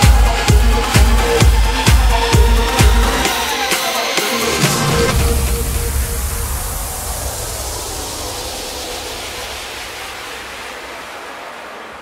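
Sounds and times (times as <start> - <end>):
deep bass tail: 0.0 - 3.4, 4.6 - 10.4
white-noise downlifter: 4.6 - 12.0.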